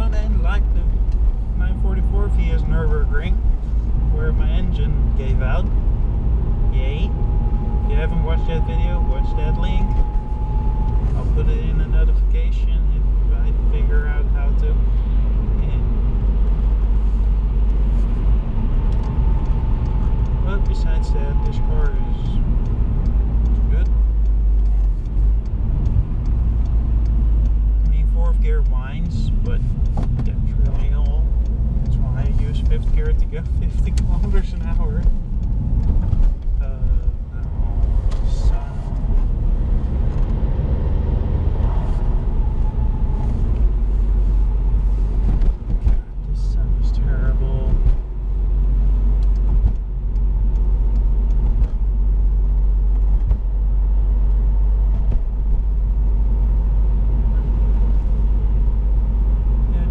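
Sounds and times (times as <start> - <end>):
car engine and road rumble: 0.0 - 59.9.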